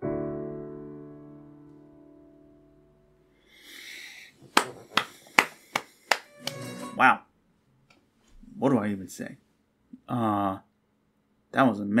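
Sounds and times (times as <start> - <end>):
piano chord: 0.0 - 3.2.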